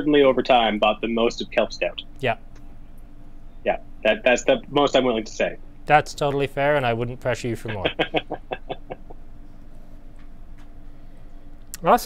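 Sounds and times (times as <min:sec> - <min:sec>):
faint steady hum: 0:00.0 - 0:12.0
man chuckling: 0:07.6 - 0:09.2.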